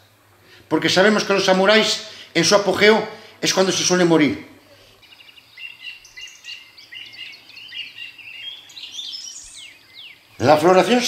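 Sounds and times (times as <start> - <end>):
songbirds chirping: 0.9 - 11.0.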